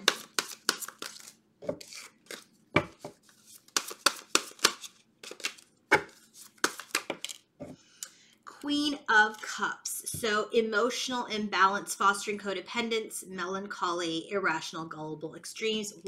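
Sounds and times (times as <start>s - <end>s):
cards being shuffled by hand: 0.0s - 7.4s.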